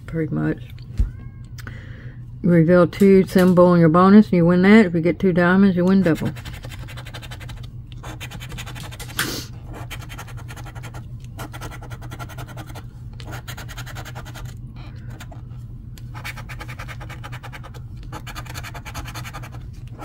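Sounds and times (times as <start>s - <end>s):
steady low hum: 0.0s - 20.0s
coin scratching lottery ticket: 6.1s - 15.4s, 16.1s - 20.0s.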